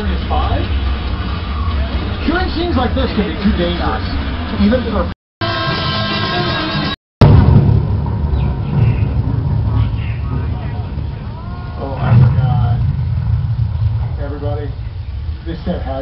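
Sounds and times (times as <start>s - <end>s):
tram rumbling: 0.0s - 5.1s, 7.2s - 16.0s
passengers talking: 9.6s - 12.8s.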